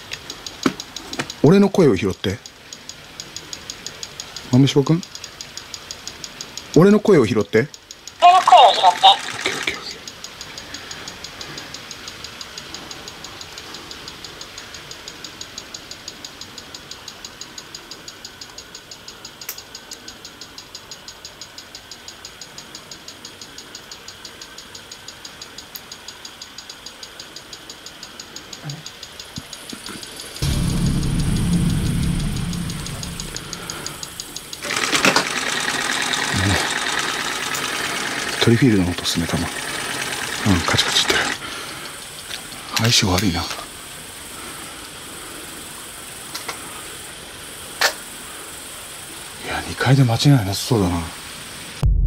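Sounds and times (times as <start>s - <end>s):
emf meter clicking: 0.0s - 9.4s, 10.0s - 43.6s
loud low rumble: 30.4s - 34.6s, 51.8s - 52.0s.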